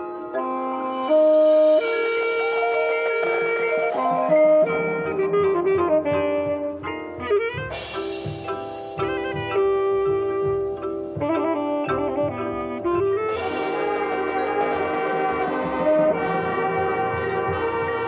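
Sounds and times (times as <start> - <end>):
marching band playing: 0.5 - 18.0
loud cymbal crash: 7.8 - 9.0, 13.3 - 14.6.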